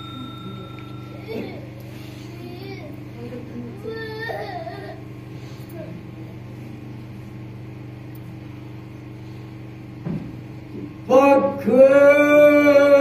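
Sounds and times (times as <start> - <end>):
low machine hum: 0.0 - 13.0.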